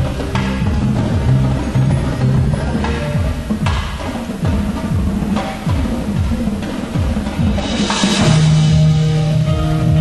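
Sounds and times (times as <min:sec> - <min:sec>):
drums with sliding low notes: 0:00.0 - 0:10.0.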